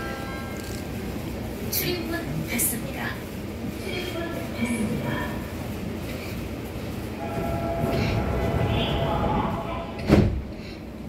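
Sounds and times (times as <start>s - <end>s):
subway car rumble: 0.0s - 11.0s
steady electronic warning tone: 7.2s - 10.0s.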